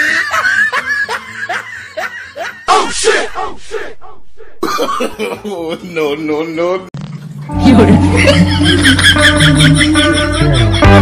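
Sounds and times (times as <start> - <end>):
person laughing: 4.5 - 6.0, 7.6 - 11.0.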